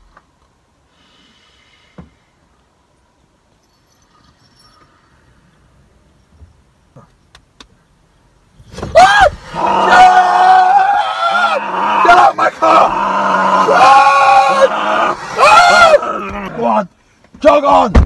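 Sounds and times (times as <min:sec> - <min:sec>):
man screaming and yelling: 0:08.9 - 0:18.0.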